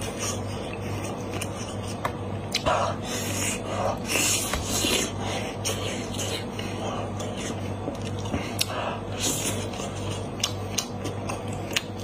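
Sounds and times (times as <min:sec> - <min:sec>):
wet chewing with smacking: 0:04.0 - 0:12.0.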